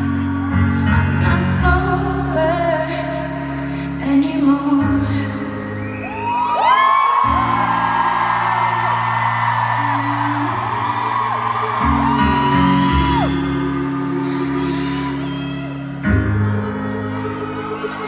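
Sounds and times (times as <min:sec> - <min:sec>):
grand piano chords: 0:00.0 - 0:18.0
crowd cheering: 0:05.9 - 0:18.0.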